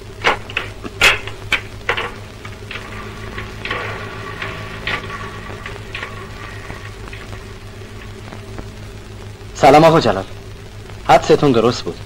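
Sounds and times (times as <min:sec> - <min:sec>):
film soundtrack hiss and crackle: 0:00.0 - 0:12.0
steady low hum: 0:00.0 - 0:12.0.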